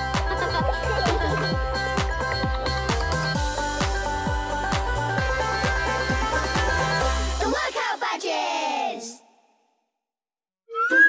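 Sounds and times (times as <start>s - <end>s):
playful children's music: 0.0s - 9.0s.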